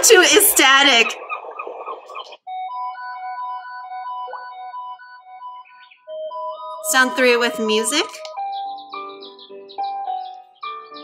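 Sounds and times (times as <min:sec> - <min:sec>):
bird chirps: 0:00.6 - 0:11.0
soft music of held notes: 0:04.8 - 0:11.0.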